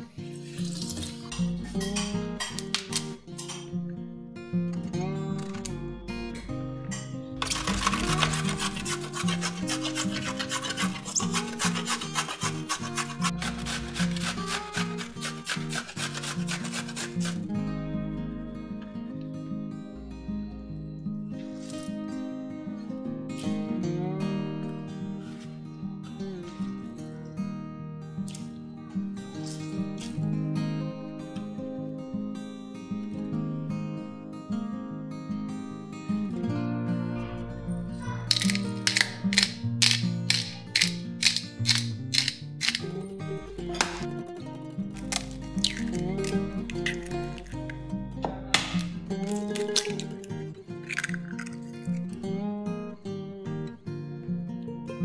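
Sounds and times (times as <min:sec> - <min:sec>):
acoustic guitar music: 0:00.0 - 0:55.0
pepper mill grinding: 0:07.4 - 0:17.5, 0:38.3 - 0:43.1, 0:44.9 - 0:47.9, 0:49.1 - 0:52.1
zucchini rasping on a grater: 0:07.4 - 0:17.5.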